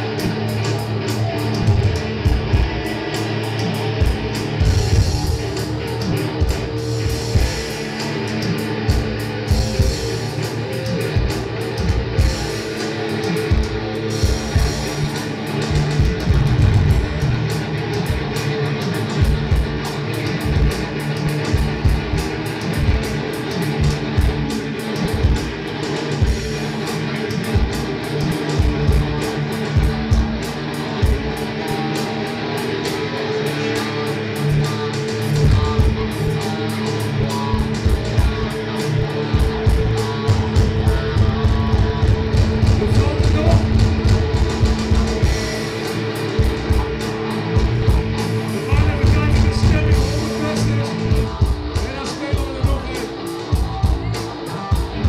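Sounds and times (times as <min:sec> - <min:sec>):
drums: 0:00.0 - 0:55.0
electric guitar: 0:00.0 - 0:55.0.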